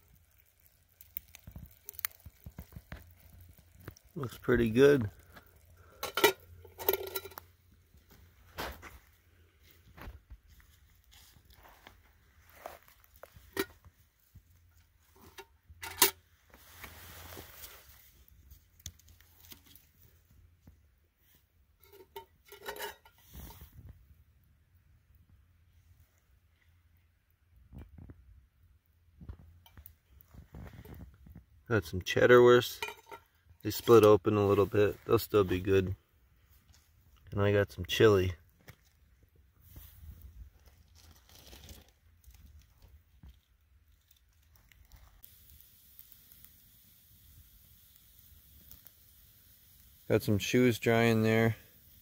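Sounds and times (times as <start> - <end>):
scraping in metal pot: 5.8 - 7.5, 21.8 - 23.7, 32.6 - 34.0
metal cooking pot clinking: 6.0 - 7.4, 32.8 - 33.2.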